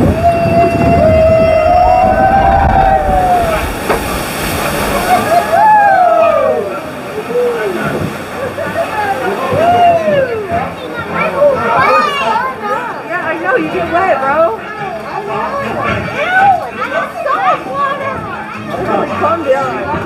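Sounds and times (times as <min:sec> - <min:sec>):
people whooping: 0:00.0 - 0:07.8, 0:09.1 - 0:10.6
rushing splashing water: 0:00.0 - 0:20.0.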